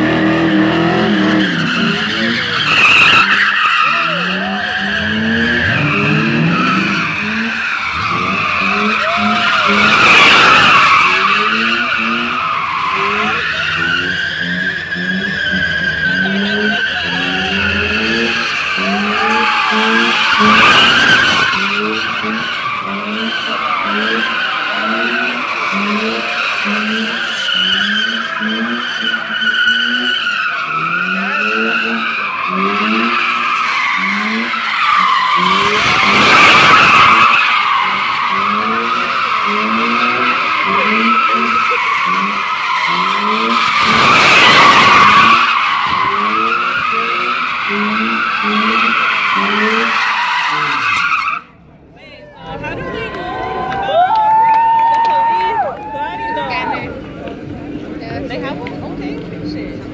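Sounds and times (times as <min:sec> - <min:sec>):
car engine revving: 0:00.0 - 0:53.6
tyres squealing: 0:00.4 - 0:51.6.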